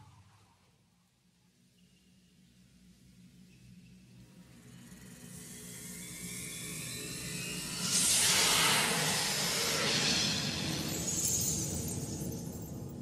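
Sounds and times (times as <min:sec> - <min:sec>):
sparkling magical hiss: 0:04.7 - 0:13.0.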